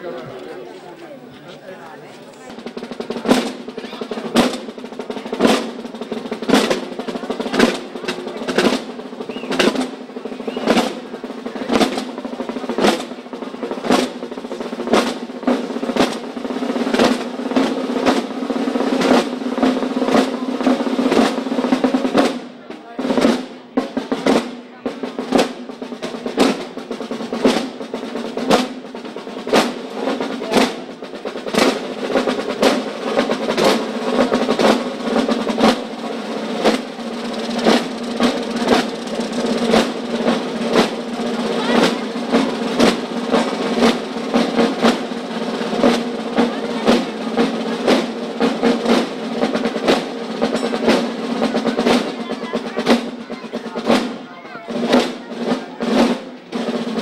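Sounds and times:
procession drums rolling: 0:00.0 - 0:57.0.

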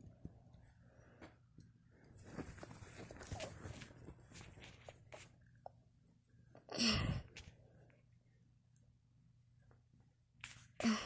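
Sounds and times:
bedding rustling: 0:01.9 - 0:05.4.

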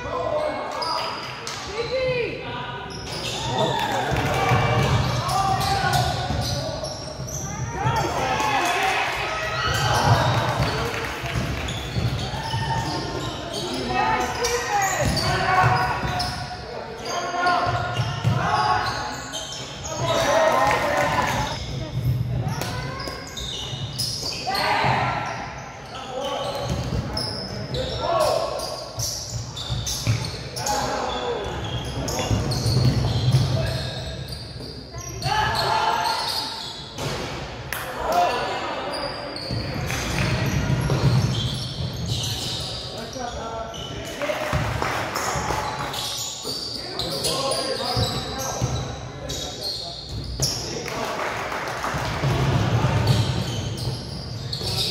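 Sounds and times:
shoe squeaks: 0:02.8 - 0:03.7, 0:05.0 - 0:08.1, 0:11.6 - 0:20.6, 0:21.3 - 0:37.0, 0:38.8 - 0:44.1, 0:45.7 - 0:50.7, 0:53.1 - 0:54.9.

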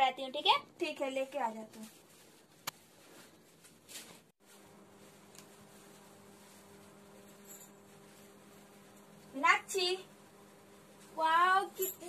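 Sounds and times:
soft rustle: 0:01.2 - 0:09.4.

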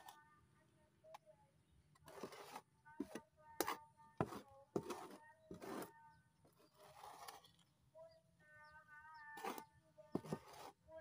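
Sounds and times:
hand trowel scraping soil: 0:02.0 - 0:07.7, 0:09.3 - 0:11.0.

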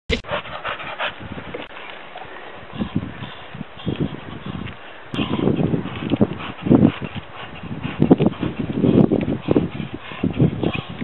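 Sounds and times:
dog panting: 0:00.1 - 0:01.4, 0:02.7 - 0:11.0.

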